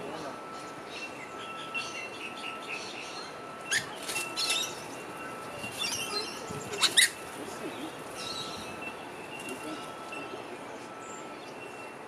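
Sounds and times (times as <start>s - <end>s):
faint steady high tone: 0.0s - 12.0s
small birds chirping: 0.5s - 12.0s.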